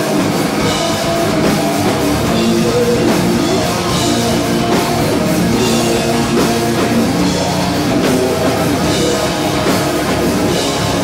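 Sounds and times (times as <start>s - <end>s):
heavy rock band playing: 0.0s - 11.0s.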